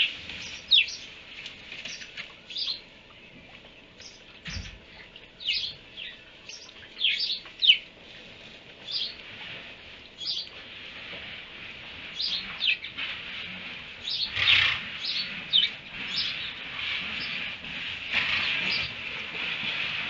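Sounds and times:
small birds chirping: 0.0 - 10.7, 12.0 - 19.7.

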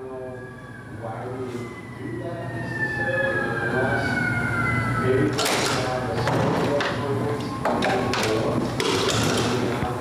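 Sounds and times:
high tone gliding down in pitch: 0.0 - 5.4
faint voices: 0.0 - 10.0.

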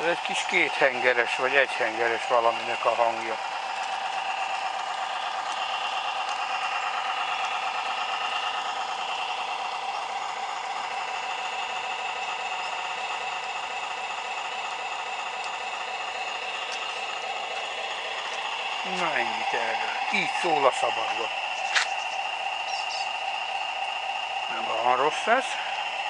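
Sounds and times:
tinny diesel engine chugging sound: 0.0 - 26.0.

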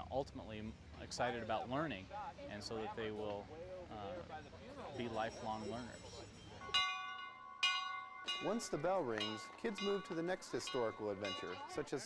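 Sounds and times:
hand bell ringing: 5.0 - 12.0.

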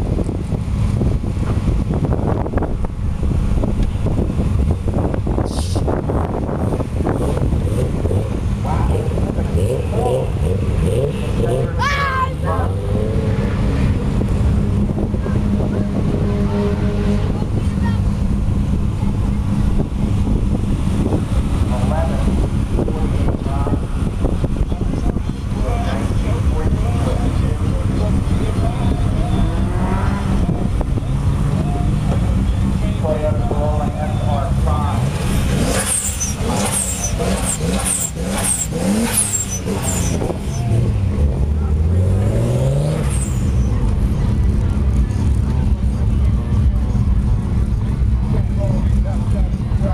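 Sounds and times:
car engine idling: 0.0 - 49.9
voices talking: 7.3 - 49.9.

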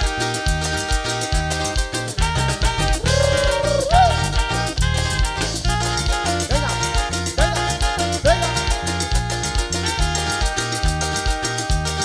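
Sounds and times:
live latin dance band: 0.0 - 12.0
percussion beat: 0.0 - 12.0
repeating bass line: 0.0 - 12.0
sliding melody: 0.0 - 12.0.

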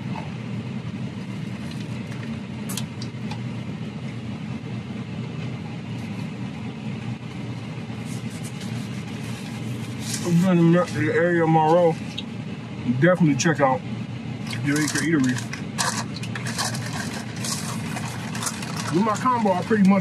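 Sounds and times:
clicks and rustles from eating: 14.5 - 19.9.

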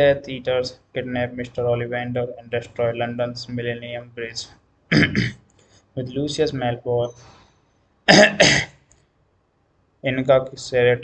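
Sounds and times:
man coughing: 4.9 - 5.4, 8.1 - 8.8.

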